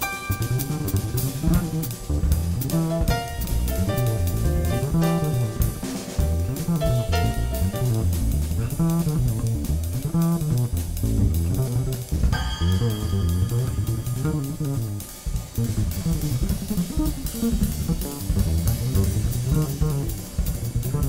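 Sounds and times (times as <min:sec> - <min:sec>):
drum kit with cymbal strokes: 0:00.0 - 0:21.0
plucked double bass: 0:00.0 - 0:21.0.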